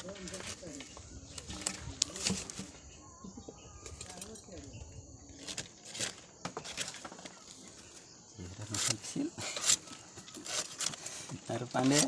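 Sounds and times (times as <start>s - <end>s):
dry fronds rustling: 0.0s - 3.0s, 3.8s - 12.0s.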